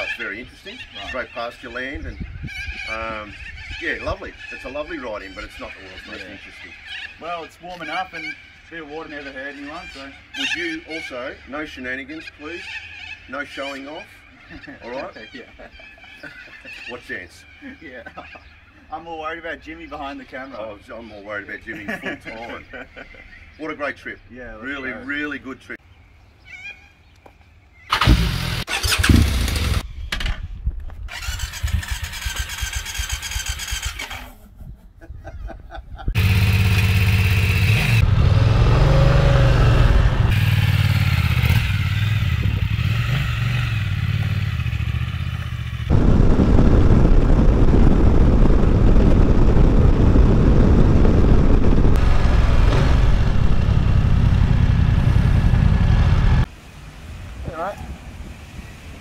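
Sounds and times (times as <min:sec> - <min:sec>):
motorcycle engine starting: 0:27.9 - 0:29.8, 0:31.1 - 0:34.3, 0:36.2 - 0:46.8, 0:52.0 - 0:56.5
motorcycle revving: 0:27.9 - 0:29.8, 0:31.1 - 0:34.2, 0:36.2 - 0:56.5
motorcycle riding noise: 0:27.9 - 0:29.8, 0:31.1 - 0:34.3, 0:36.1 - 0:59.0.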